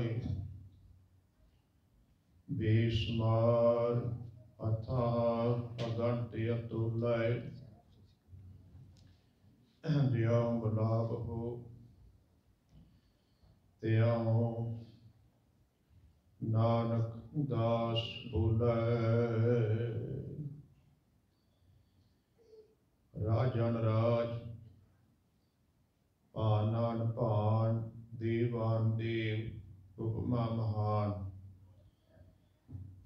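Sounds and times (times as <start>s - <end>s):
man chanting into a microphone: 0.0s - 0.6s, 2.5s - 7.7s, 9.8s - 11.8s, 13.8s - 15.0s, 16.4s - 20.6s, 23.2s - 24.6s, 26.4s - 31.4s.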